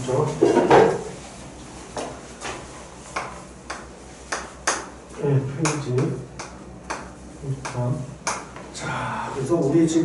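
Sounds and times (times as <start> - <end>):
chalk tapping on chalkboard: 2.0 - 5.0, 5.6 - 8.7.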